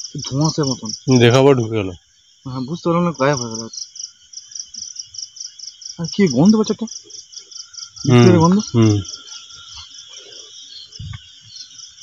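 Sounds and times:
crickets chirping: 0:00.0 - 0:12.0
man's voice: 0:08.1 - 0:09.1.

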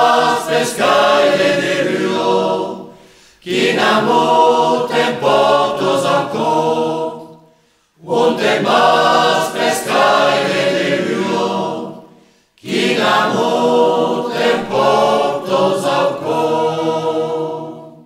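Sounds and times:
choir singing a cappella: 0:00.0 - 0:18.0.

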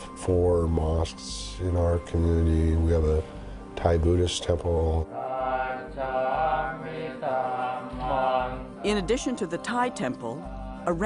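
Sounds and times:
monks chanting together: 0:05.0 - 0:08.9.

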